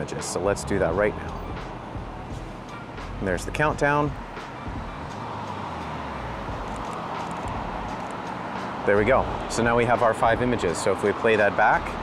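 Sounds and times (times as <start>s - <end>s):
street traffic passing: 0.0s - 12.0s.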